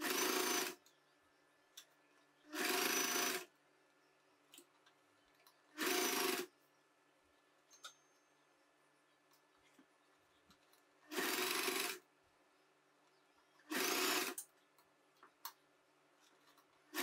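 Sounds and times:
sewing machine stitching: 0.0 - 0.8, 2.5 - 3.5, 5.8 - 6.5, 11.0 - 12.0, 13.6 - 14.5.

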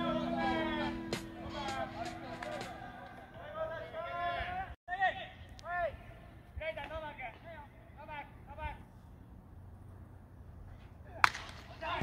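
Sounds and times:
bat cracking a baseball: 11.2 - 11.8.

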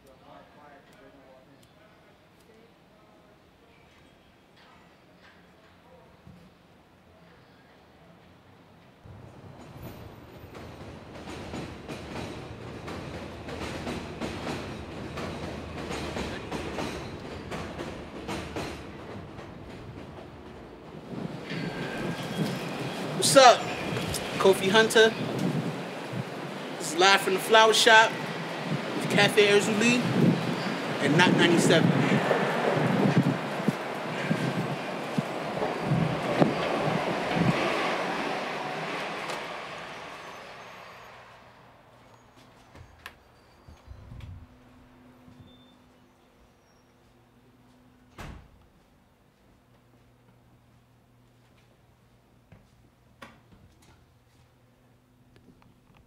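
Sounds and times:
city street traffic: 7.9 - 44.0
subway train wheels clattering: 8.7 - 44.0
train rumble: 9.1 - 45.6.

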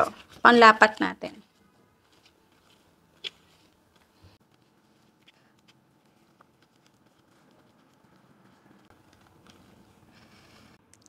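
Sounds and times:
leaf brushing: 1.4 - 10.8
leaf rubbing: 1.4 - 10.8.

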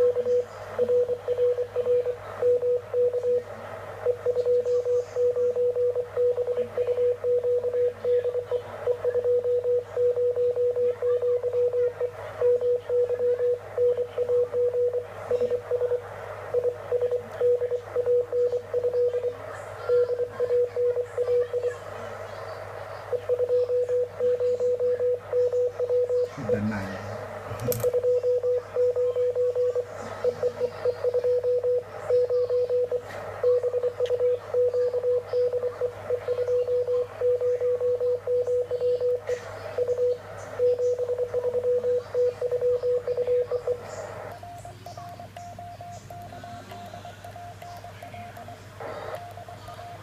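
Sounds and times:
morse code beeps: 0.0 - 21.9, 23.1 - 50.0
low steady hum: 0.0 - 50.0
receiver hiss: 38.6 - 50.0.

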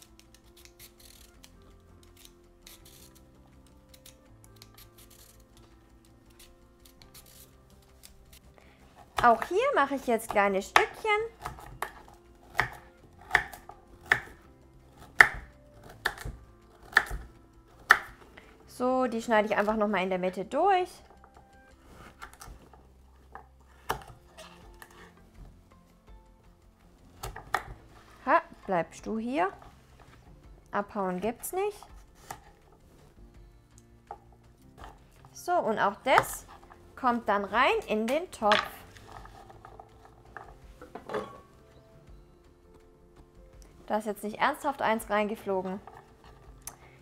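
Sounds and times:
peeler scraping carrot: 0.0 - 3.3, 3.9 - 5.6, 6.3 - 8.4
soft background music: 0.0 - 47.0
knife cutting on wooden board: 31.9 - 32.6.

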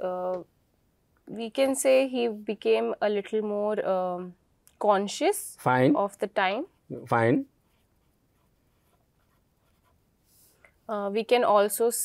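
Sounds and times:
person speaking: 5.6 - 7.6
marker pen scratching on paper: 7.6 - 10.6.

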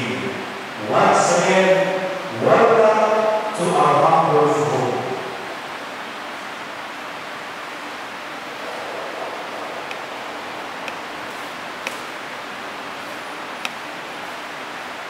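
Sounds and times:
room noise hiss: 0.0 - 15.0.

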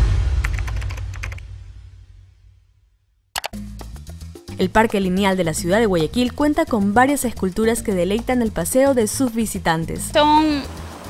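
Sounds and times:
low rumble: 0.0 - 2.9
keyboard typing clicks: 3.4 - 3.6.

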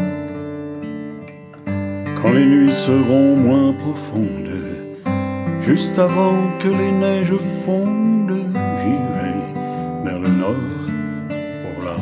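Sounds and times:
acoustic guitar strummed chords: 0.0 - 12.0.

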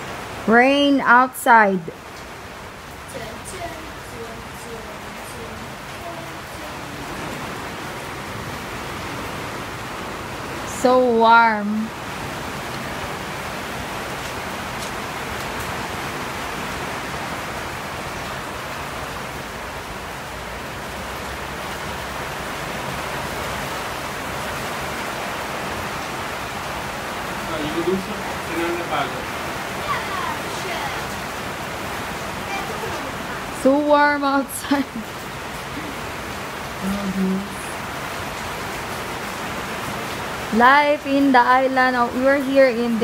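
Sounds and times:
steady rain falling: 0.0 - 43.0
person's wavering call: 36.8 - 37.8.

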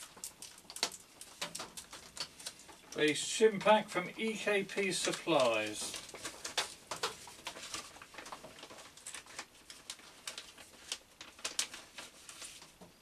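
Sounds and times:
plastic packet crinkling: 0.0 - 12.8.

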